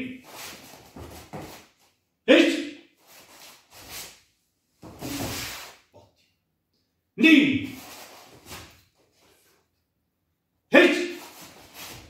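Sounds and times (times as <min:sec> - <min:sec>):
feet shuffling: 0:00.3 - 0:01.8, 0:11.2 - 0:12.0
wooden swords swishing: 0:04.8 - 0:06.1, 0:07.7 - 0:09.6, 0:10.9 - 0:12.0.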